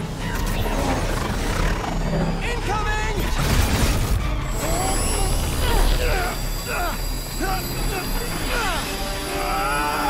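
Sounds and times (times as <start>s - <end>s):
dramatic trailer music: 0.0s - 10.0s
swarm of flying drones: 0.0s - 10.0s.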